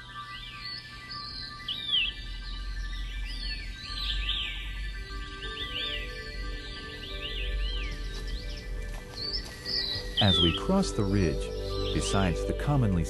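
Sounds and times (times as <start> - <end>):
birds chirping: 0.0 - 13.0
soft background music: 0.0 - 13.0.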